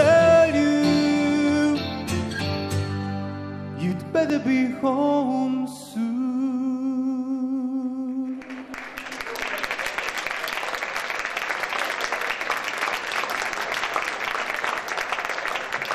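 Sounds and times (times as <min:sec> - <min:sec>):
audience applause: 0:08.3 - 0:15.9.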